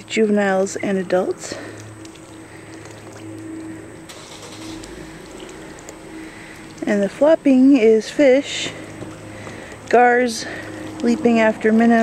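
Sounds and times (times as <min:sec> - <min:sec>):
low mechanical hum: 0:00.0 - 0:12.0
fish splashing in water: 0:00.8 - 0:12.0.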